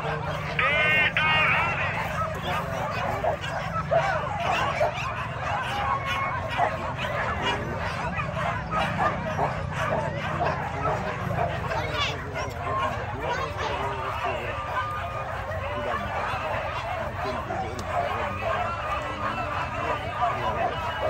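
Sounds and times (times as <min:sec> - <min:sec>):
crowd chatter: 0:00.0 - 0:21.0
dogs barking and yipping: 0:00.0 - 0:21.0.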